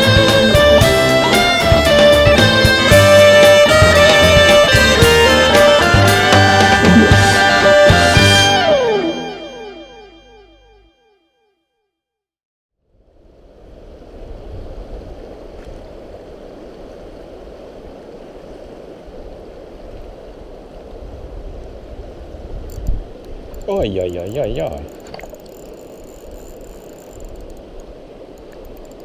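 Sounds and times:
fast-flowing river rushing: 0:00.0 - 0:09.4
music track: 0:00.0 - 0:11.0.

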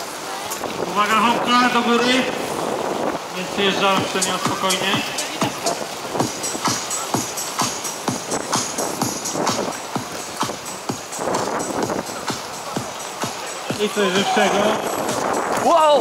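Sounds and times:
music with a steady beat: 0:04.0 - 0:15.8.

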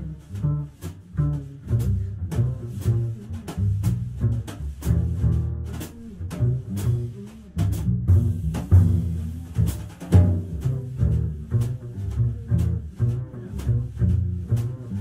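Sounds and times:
light drum kit strokes: 0:00.0 - 0:15.0
plucked double bass: 0:00.0 - 0:15.0.

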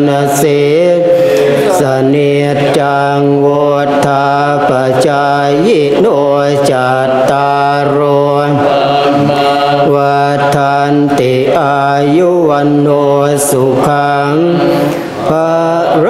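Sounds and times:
monks chanting in unison: 0:00.0 - 0:16.0.

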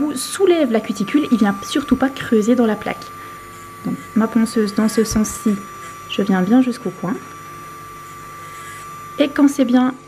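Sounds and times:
electric nail drill whining: 0:00.0 - 0:10.0.

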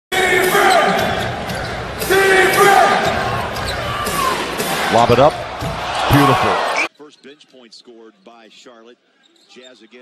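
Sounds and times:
arena crowd noise: 0:00.1 - 0:10.0.

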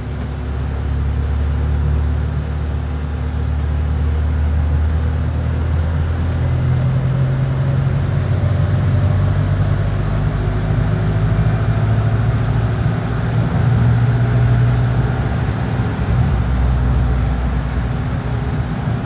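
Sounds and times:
bus engine drone: 0:00.0 - 0:19.0
road noise: 0:00.0 - 0:19.0.

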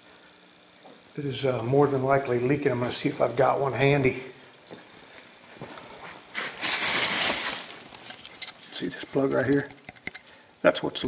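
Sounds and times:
plastic sheeting rustling: 0:05.7 - 0:08.2.

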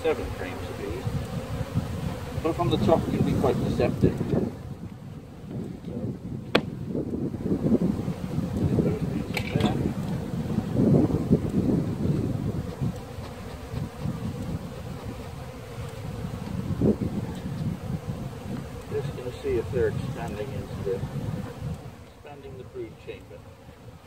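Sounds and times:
honeybees buzzing: 0:00.0 - 0:24.0
hive parts clicking: 0:01.0 - 0:01.8, 0:08.5 - 0:10.3, 0:12.6 - 0:16.6, 0:17.3 - 0:19.0, 0:19.6 - 0:20.6.

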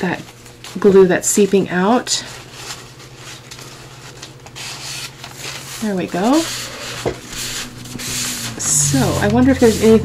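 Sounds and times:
paper towel wiping paper: 0:02.4 - 0:10.0.

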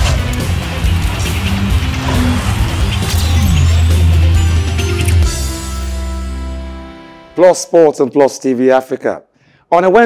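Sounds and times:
sports show theme music: 0:00.0 - 0:07.6.

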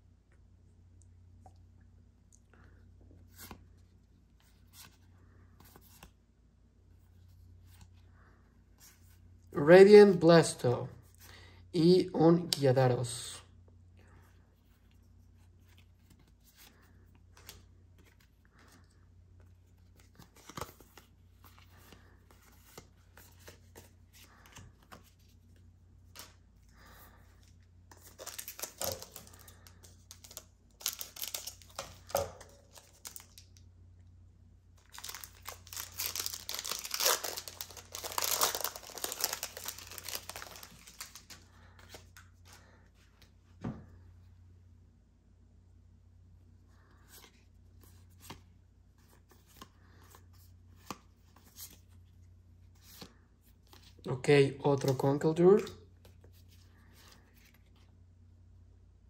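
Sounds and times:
cards being handled: 0:14.6 - 0:33.5, 0:34.8 - 0:43.4, 0:46.9 - 0:52.1, 0:54.7 - 0:57.9
foil wrapper crinkling and tearing: 0:28.0 - 0:33.5, 0:34.8 - 0:42.0.

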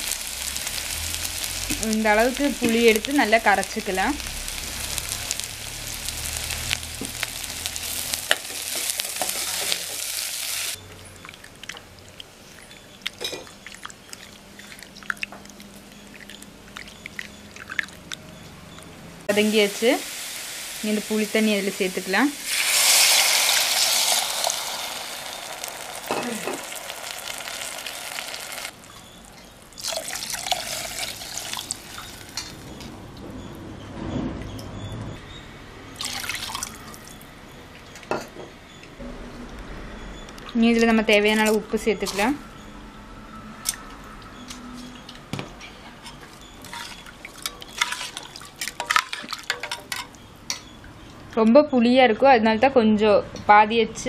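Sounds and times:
vegetables sizzling in hot oil: 0:00.0 - 0:10.8, 0:19.3 - 0:32.9
liquid pouring into metal pot: 0:29.8 - 0:32.5, 0:36.0 - 0:37.0.

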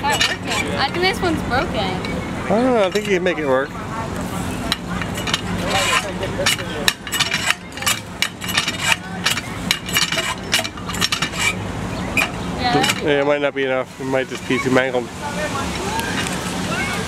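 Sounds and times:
hand water pump clanking: 0:00.0 - 0:01.2, 0:02.8 - 0:03.4, 0:04.6 - 0:13.4.

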